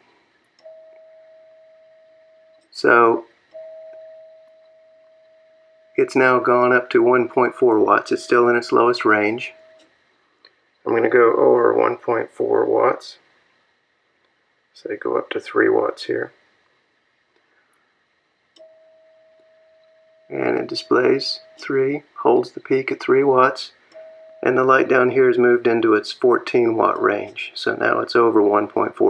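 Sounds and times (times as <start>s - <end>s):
steady pure radio tone: 0.7s - 9.8s, 10.9s - 13.2s, 18.6s - 29.0s.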